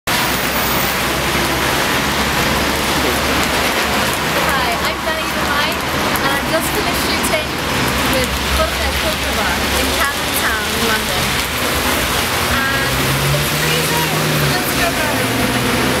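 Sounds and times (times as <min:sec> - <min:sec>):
rain hiss: 0:00.1 - 0:16.0
vehicle engine humming: 0:00.1 - 0:16.0
wet traffic: 0:00.1 - 0:16.0
people's voices: 0:02.4 - 0:16.0.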